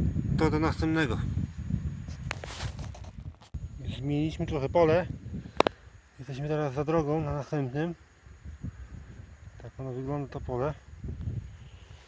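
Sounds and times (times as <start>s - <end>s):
sharp clicks: 5.6s - 5.8s.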